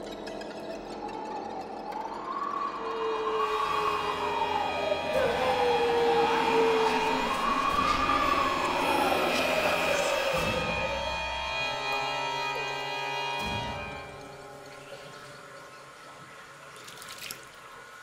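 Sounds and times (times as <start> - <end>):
slow wailing tone: 0.7 - 14.7.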